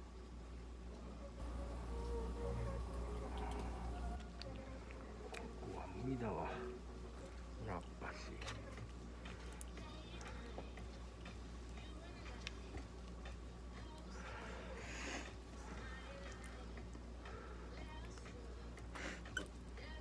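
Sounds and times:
low hum: 0.9 - 19.0
murmured voices: 1.4 - 6.8.

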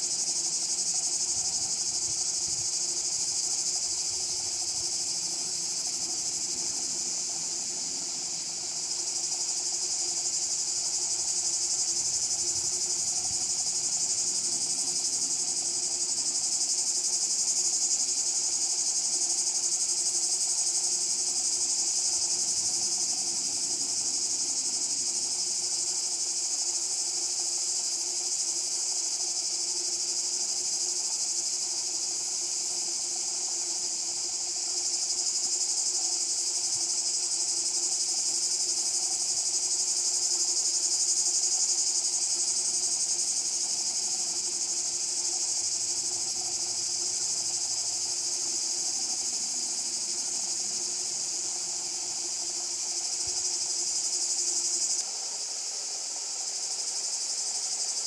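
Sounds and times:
insects buzzing: 0.0 - 58.0.

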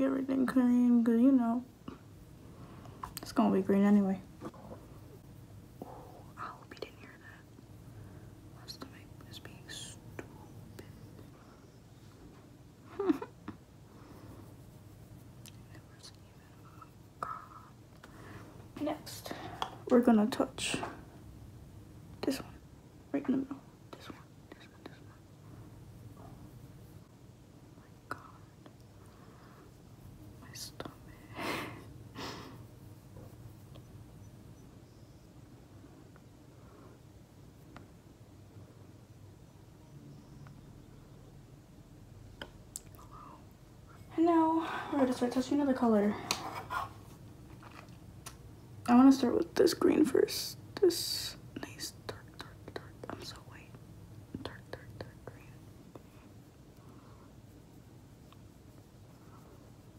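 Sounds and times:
whispered breaths: 43.0 - 45.2.

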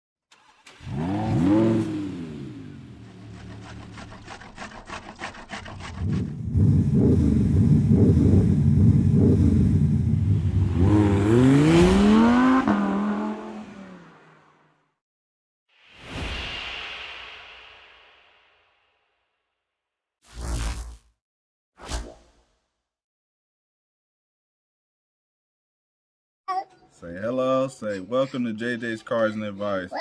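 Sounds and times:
car engine revving: 0.4 - 4.1, 6.0 - 14.6.

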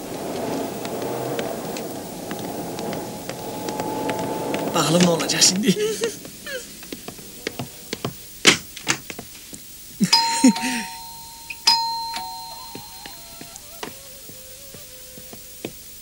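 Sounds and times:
two-tone doorbell chime: 10.0 - 13.5.

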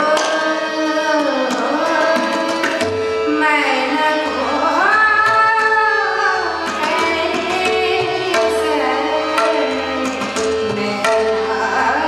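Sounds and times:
tabla: 0.0 - 12.0
woman singing classical vocal: 0.0 - 12.0.

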